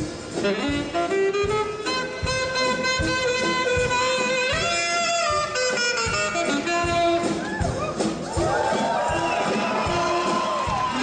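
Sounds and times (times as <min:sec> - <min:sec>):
saxophone: 0:00.0 - 0:08.0
low beat: 0:00.0 - 0:11.0
wind band playing: 0:00.0 - 0:11.0.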